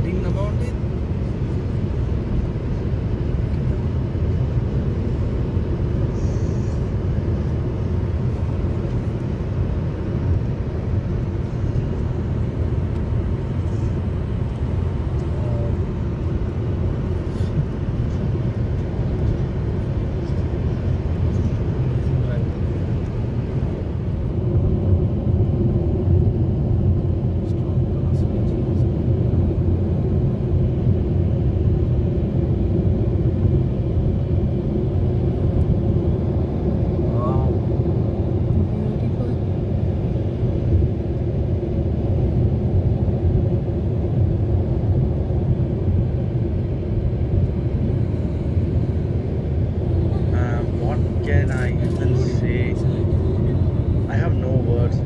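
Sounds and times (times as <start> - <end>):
car road and engine noise: 0.0 - 55.0.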